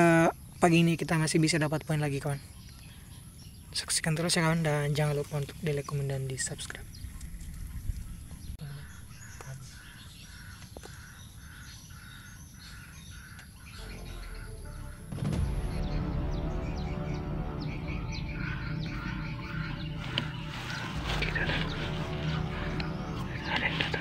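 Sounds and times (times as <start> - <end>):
background music: 13.7 - 24.0.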